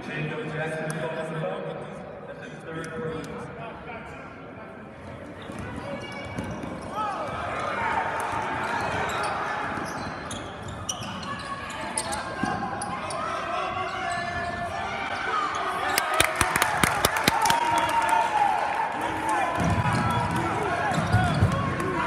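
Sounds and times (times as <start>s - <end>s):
sneakers squeaking: 8.9s - 13.3s.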